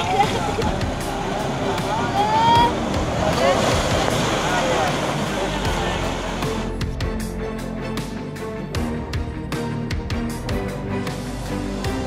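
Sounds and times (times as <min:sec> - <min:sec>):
people's voices: 0:00.0 - 0:06.6
river floodwater rushing: 0:00.0 - 0:06.9.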